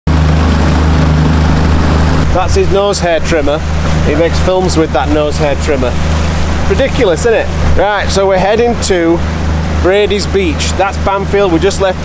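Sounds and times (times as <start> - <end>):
outboard motor running: 0.1 - 12.0
rush of wind and water: 0.1 - 12.0.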